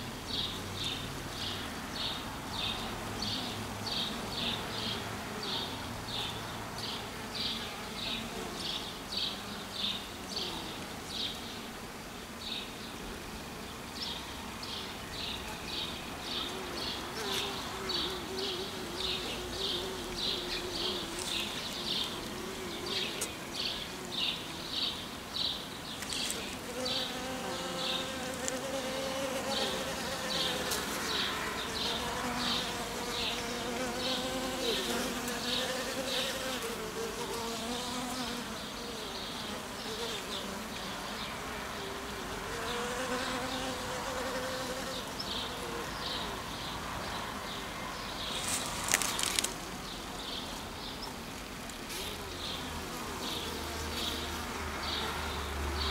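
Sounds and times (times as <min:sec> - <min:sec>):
honeybees buzzing: 0:02.0 - 0:47.2, 0:48.2 - 0:55.9.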